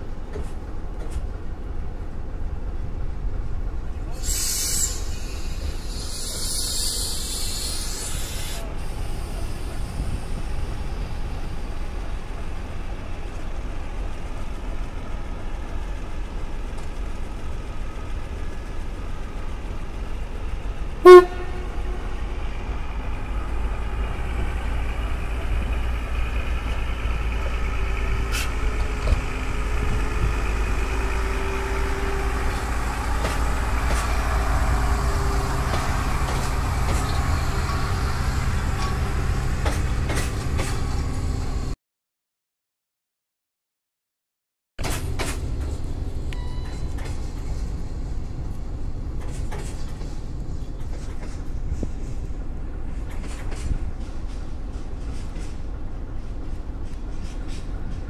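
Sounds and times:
diesel engine rumble: 0.0s - 41.8s
train coaches passing: 0.0s - 41.8s
train horn blast: 21.0s - 22.3s.

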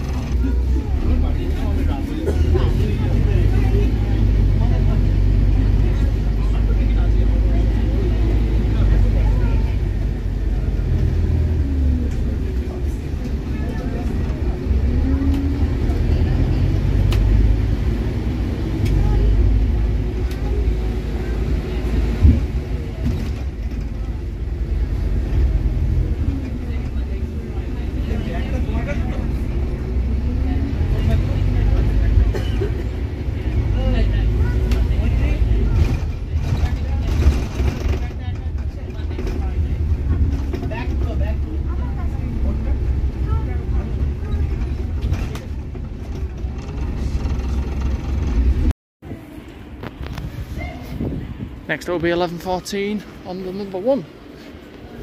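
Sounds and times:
bus engine and road rumble: 0.0s - 55.0s.

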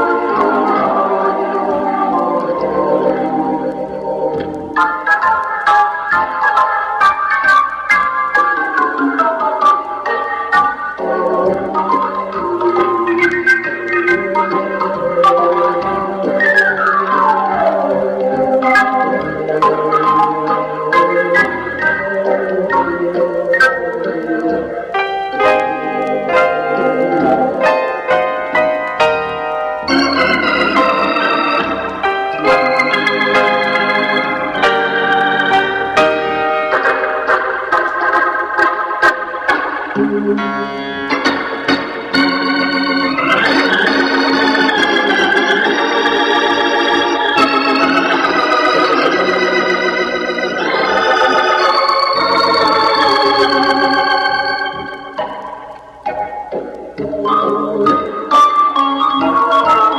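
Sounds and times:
organ playing a melody: 0.0s - 59.9s
record ticks: 0.0s - 59.9s.

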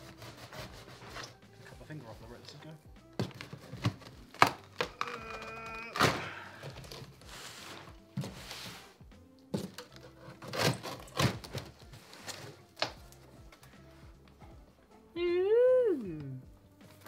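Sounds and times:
knife scraping through cardboard: 0.0s - 1.4s, 10.0s - 12.6s
plastic and cardboard rustling: 0.0s - 13.7s
quiet background music: 0.0s - 17.0s.

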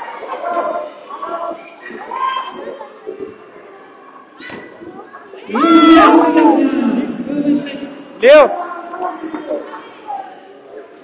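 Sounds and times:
echoing sports hall ambience: 0.0s - 11.0s
faint children's voices: 0.0s - 11.0s.

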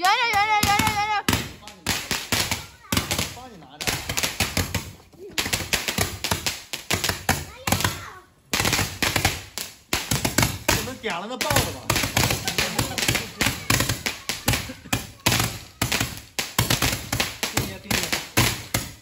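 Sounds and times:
fireworks crackling bangs: 0.0s - 19.0s.

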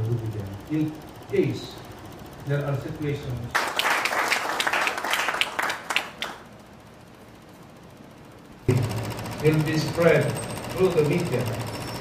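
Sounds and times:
audience applauding: 3.5s - 6.4s.

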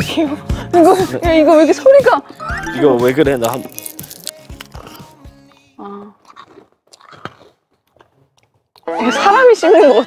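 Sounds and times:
donkey crunching sugar cubes: 3.1s - 5.2s, 6.2s - 8.9s.

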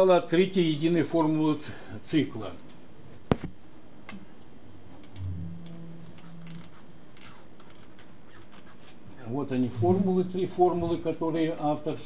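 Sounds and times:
brief low hum: 5.0s - 7.1s, 9.6s - 11.0s.

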